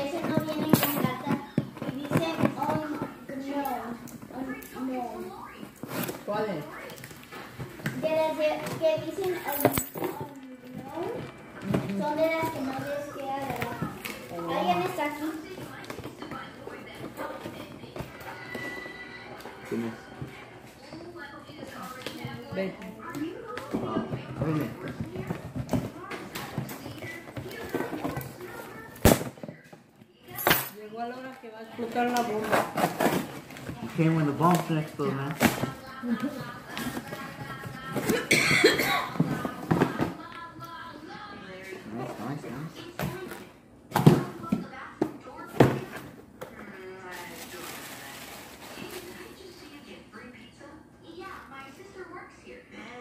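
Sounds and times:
packing paper rustling and tearing: 46.9s - 49.4s.

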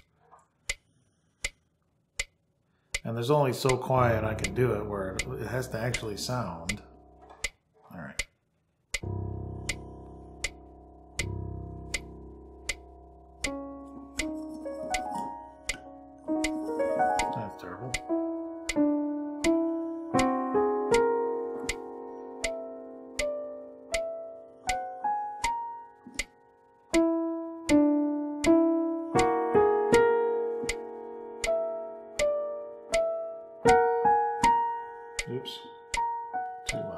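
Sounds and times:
metronome clicking: 3.0s - 7.6s, 8.2s - 36.9s
digital piano chords: 3.1s - 7.5s, 8.9s - 36.9s.

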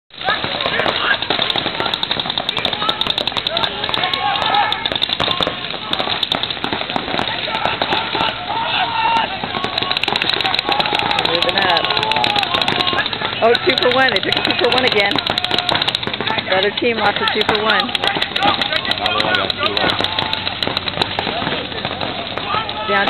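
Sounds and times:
spectators shouting and chatting: 0.1s - 23.0s
paintball markers popping: 0.2s - 8.4s, 9.0s - 23.0s.

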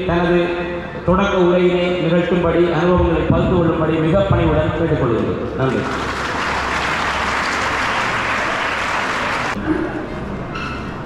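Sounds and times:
audience applause: 5.7s - 9.6s.

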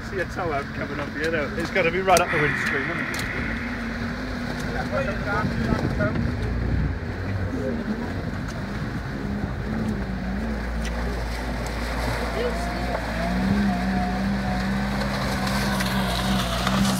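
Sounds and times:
water splashing and rushing: 1.4s - 16.9s.

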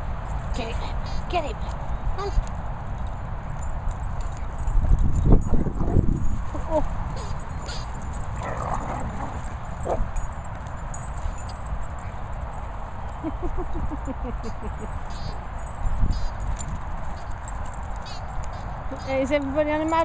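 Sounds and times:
dogs scuffling: 3.6s - 13.2s, 14.9s - 20.0s
dogs yipping: 6.6s - 20.0s.

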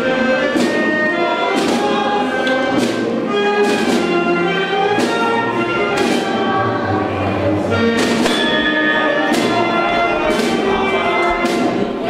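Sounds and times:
band playing processional march: 0.0s - 12.0s
drum strokes: 0.0s - 12.0s.

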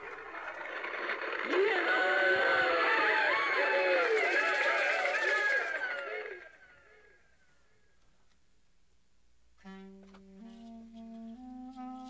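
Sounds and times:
overlapping voices: 0.0s - 6.5s.

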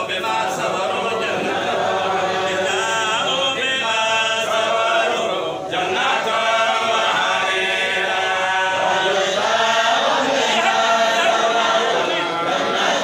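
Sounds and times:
group of voices chanting: 0.0s - 13.0s.

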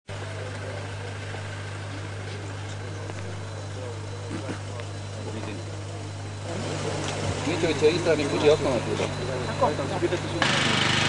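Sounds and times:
engine idling hum: 0.1s - 11.0s
faint outdoor background noise: 0.1s - 11.0s.

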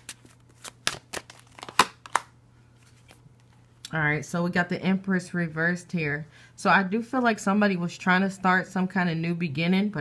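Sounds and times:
cards shuffling and snapping: 0.0s - 3.2s.

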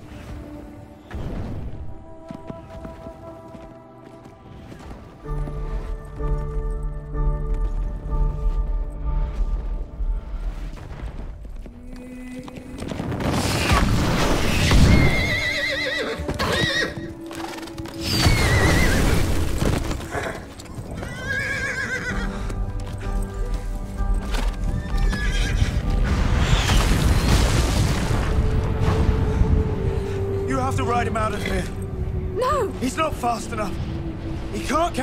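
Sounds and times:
dramatic film score music: 0.0s - 35.0s
galloping hooves: 2.1s - 26.6s
horse whinnying: 14.5s - 17.2s, 18.0s - 19.3s, 20.1s - 22.4s, 24.7s - 25.9s.

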